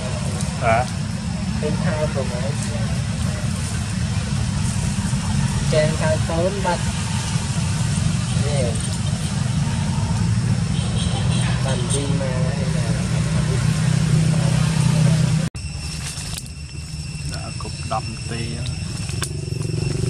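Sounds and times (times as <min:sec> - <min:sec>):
vehicle engine idling: 0:00.0 - 0:20.0
steady high tones: 0:15.6 - 0:20.0.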